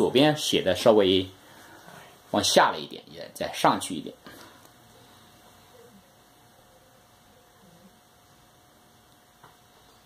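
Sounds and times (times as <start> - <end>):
faint hum: 0.0 - 10.0
faint steady hiss: 0.0 - 10.0.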